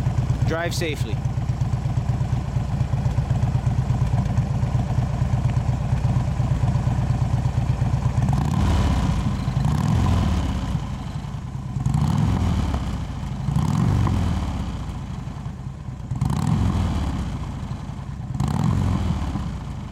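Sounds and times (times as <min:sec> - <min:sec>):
motorcycle engine idling: 0:00.0 - 0:19.9.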